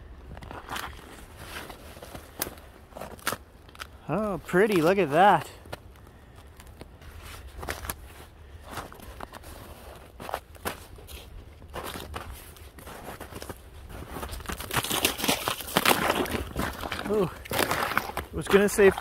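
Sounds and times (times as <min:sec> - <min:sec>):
thin ice crackling underfoot: 0:00.2 - 0:19.0.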